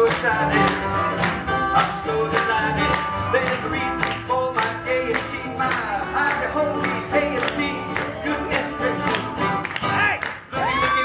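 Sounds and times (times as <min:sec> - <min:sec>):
swing band playing: 0:00.0 - 0:11.0.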